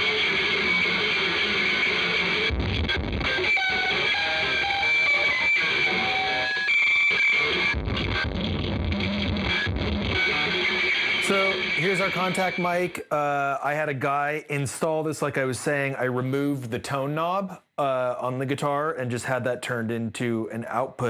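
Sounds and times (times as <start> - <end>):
electric guitar strings plucked and scraped: 0.0 - 12.9.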